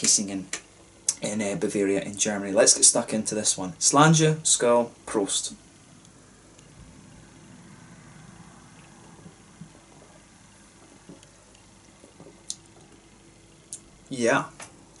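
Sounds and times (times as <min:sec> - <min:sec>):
faint room hum: 0:00.0 - 0:15.0.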